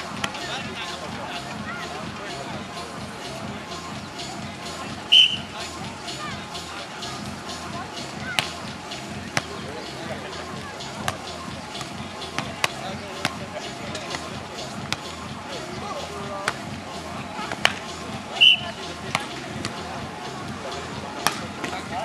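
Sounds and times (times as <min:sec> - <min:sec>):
volleyball smacks: 0:17.5 - 0:17.8, 0:21.2 - 0:21.8.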